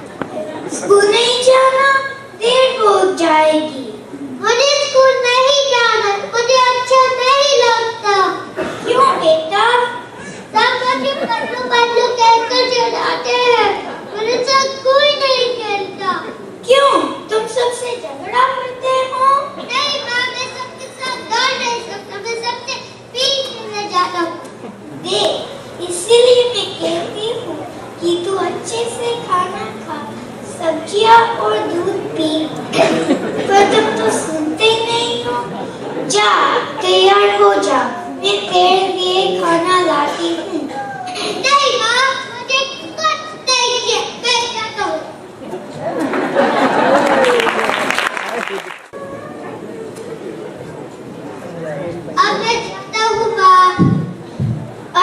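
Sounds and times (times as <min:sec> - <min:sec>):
murmur of crowd chatter: 0:00.0 - 0:55.0
child speaking over pa: 0:00.8 - 0:35.5
audience clapping: 0:46.6 - 0:49.0.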